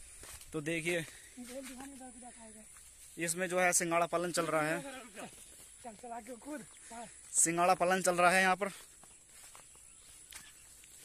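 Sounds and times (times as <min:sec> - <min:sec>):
soft footsteps on grass: 0:00.0 - 0:11.0.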